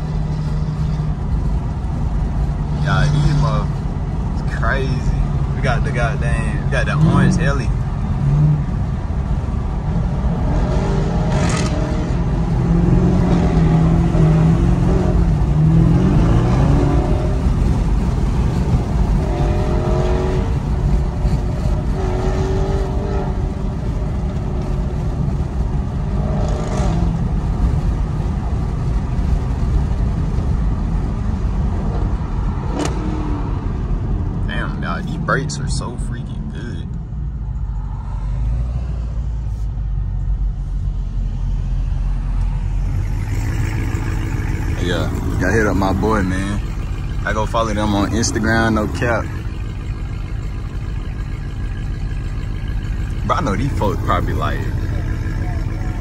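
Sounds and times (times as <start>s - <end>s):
car engine low rumble: 0.0s - 56.0s
road noise: 0.0s - 56.0s.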